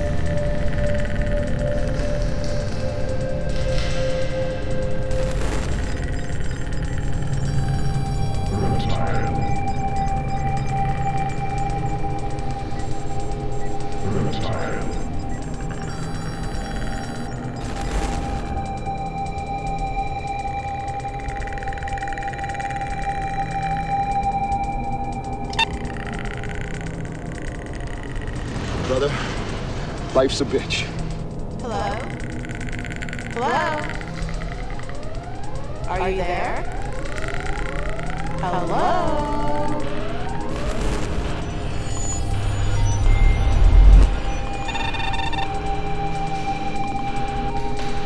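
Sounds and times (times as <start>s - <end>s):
continuous held tone: 0.0s - 48.0s
low rumble: 17.5s - 48.0s
deep low rumble swell: 33.8s - 48.0s.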